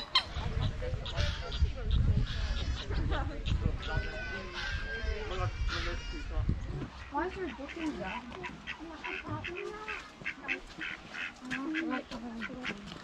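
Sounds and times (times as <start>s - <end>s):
faint voices: 0.0s - 13.0s
waterfowl calling: 0.0s - 13.0s.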